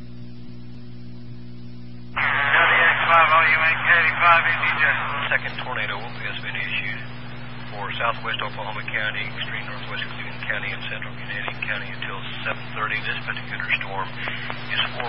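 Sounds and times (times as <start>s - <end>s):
radio hum and hiss: 0.0s - 15.0s
person speaking over radio: 2.2s - 15.0s.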